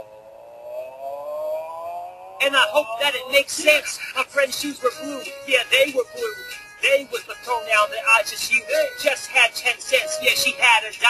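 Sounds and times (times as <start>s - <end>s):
long tone rising in pitch: 0.0s - 3.3s.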